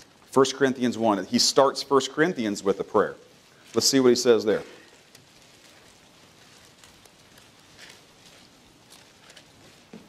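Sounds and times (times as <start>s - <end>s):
pages being turned: 3.6s - 10.0s.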